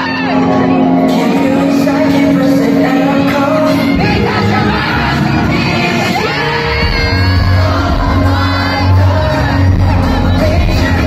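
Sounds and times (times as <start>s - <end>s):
crowd screaming and shouting: 0.0s - 11.0s
pop song over loudspeakers: 0.0s - 11.0s.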